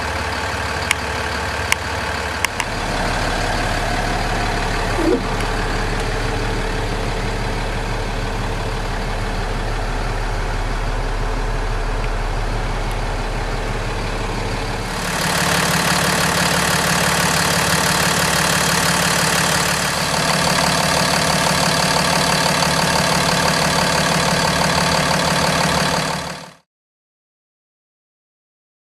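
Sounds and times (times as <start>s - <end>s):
diesel engine idling: 0.0s - 26.6s.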